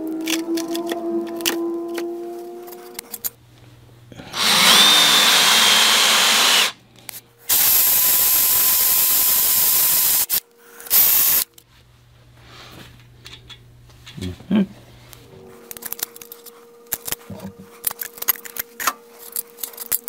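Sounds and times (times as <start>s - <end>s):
drill boring into metal: 4.3s - 6.8s, 7.5s - 11.4s.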